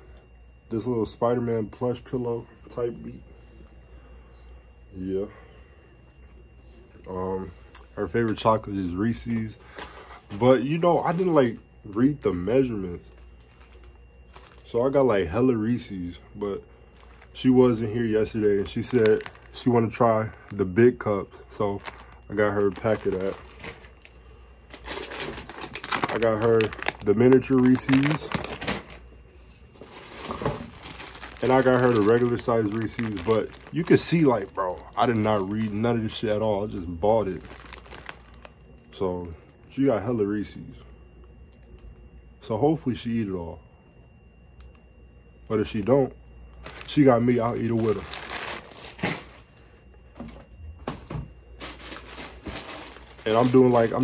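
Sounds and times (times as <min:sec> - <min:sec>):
plastic wrappers crinkling: 0:08.4 - 0:40.0, 0:46.5 - 0:50.3, 0:51.5 - 0:54.0.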